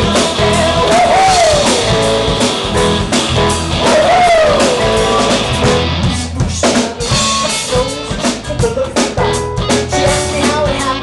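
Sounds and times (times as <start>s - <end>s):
pitch-bending lead melody: 0.0s - 8.4s
live rock band playing: 0.0s - 11.0s.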